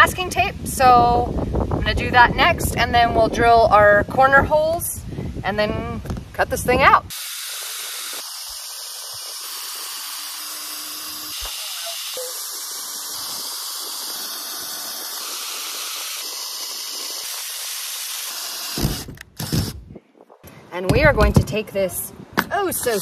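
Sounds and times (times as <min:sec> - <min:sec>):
drill boring through sheet metal: 0:07.1 - 0:19.8.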